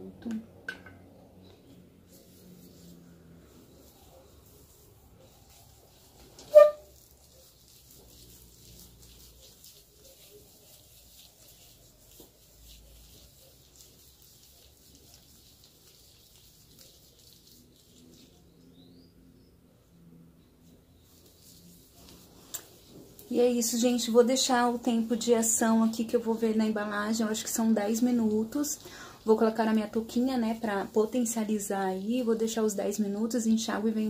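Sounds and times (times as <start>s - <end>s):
hands working mask through wet hair: 0.3s - 18.9s, 20.6s - 34.0s.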